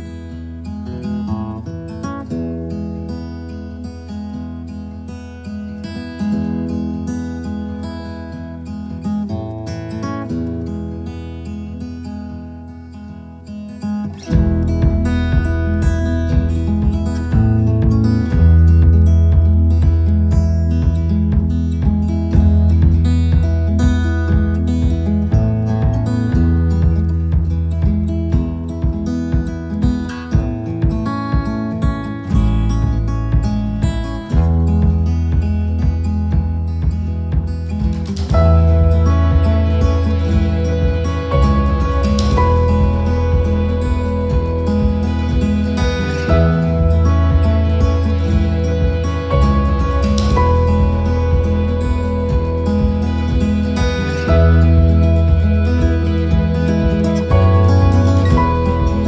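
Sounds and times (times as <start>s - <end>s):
plucked and strummed guitar: 0.0s - 59.0s
heavy bass and steady beat: 14.3s - 59.0s.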